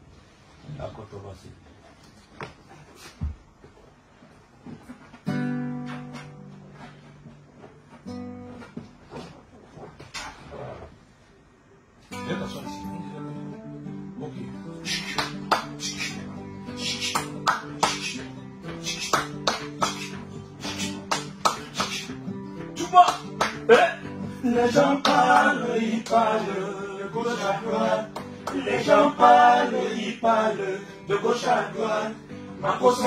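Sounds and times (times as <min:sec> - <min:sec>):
acoustic guitar strumming: 0:04.8 - 0:09.3, 0:12.1 - 0:33.0
hands clapping: 0:14.9 - 0:23.7, 0:25.0 - 0:26.2, 0:28.1 - 0:28.8.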